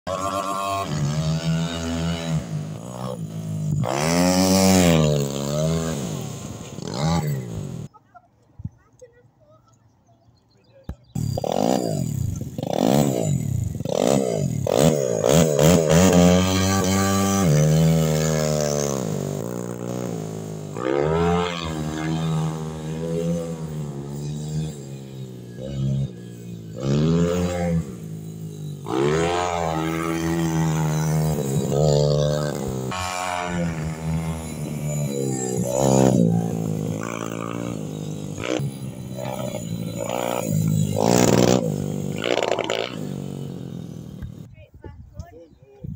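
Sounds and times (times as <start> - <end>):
motorbike engine revving: 0.0 - 8.0, 10.9 - 44.6.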